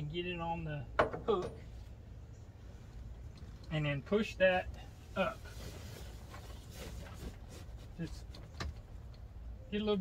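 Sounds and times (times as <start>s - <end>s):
low steady rumble: 0.0s - 10.0s
faint rustling: 4.8s - 9.1s.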